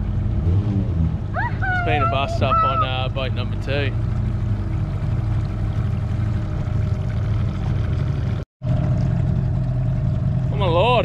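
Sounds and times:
outboard motor humming: 0.0s - 11.0s.

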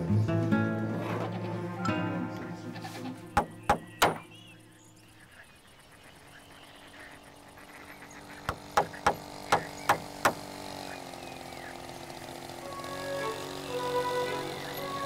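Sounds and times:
soft background music: 0.0s - 3.7s, 12.6s - 15.0s
hammer blows on wooden board: 3.4s - 4.3s, 8.5s - 10.4s.

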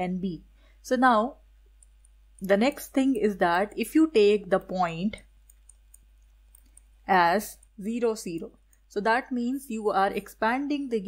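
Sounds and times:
stylus clicks on pen tablet: 4.6s - 8.9s.

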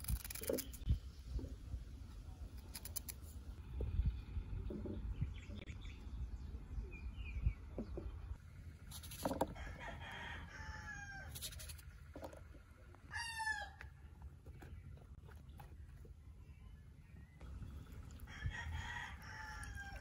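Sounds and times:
rooster crowing: 9.6s - 11.3s, 13.1s - 13.8s, 18.3s - 20.0s.

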